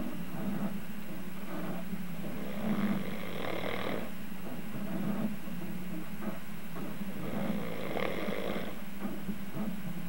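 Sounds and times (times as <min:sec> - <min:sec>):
steady low hum: 0:00.0 - 0:10.0
man snoring: 0:02.2 - 0:04.1, 0:07.1 - 0:08.8.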